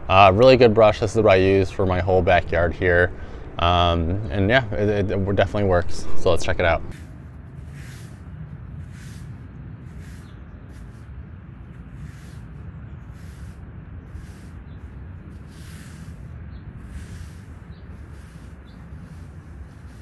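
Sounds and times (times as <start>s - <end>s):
steady low rumble: 0.0s - 20.0s
rake bristles swishing on turf: 6.9s - 11.1s, 11.7s - 20.0s.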